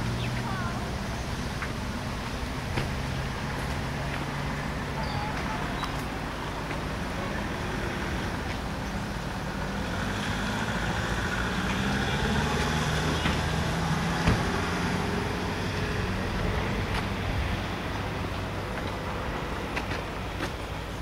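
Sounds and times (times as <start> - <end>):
vehicle engine humming: 0.0 - 21.0.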